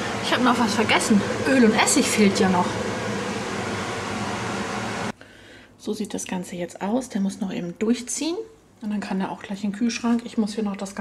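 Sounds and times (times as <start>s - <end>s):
low hum: 0.0s - 5.1s
fan-like mechanical whooshing: 0.0s - 5.2s.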